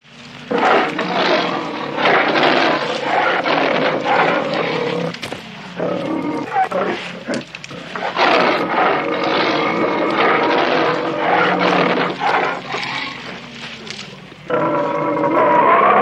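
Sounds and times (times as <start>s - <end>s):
bear growling and roaring: 0.4s - 16.0s.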